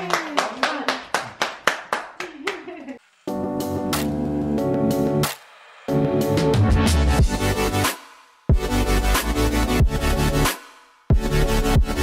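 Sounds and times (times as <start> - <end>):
people clapping in rhythm: 0.0 - 2.7.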